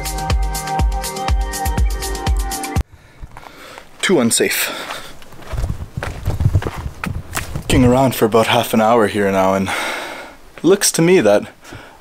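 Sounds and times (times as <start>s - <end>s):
footsteps on rocky ground: 2.8s - 8.8s.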